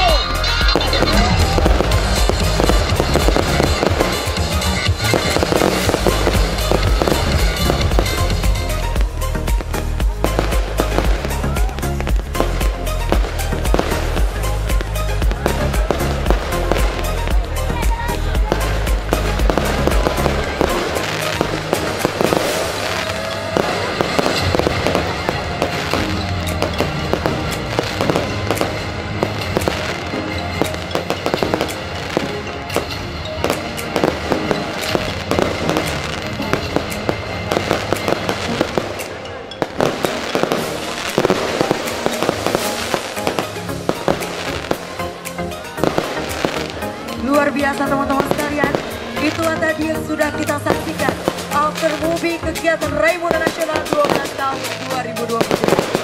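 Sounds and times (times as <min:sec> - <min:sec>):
fireworks bursting and crackling: 0:00.0 - 0:56.0
music playing: 0:00.0 - 0:56.0.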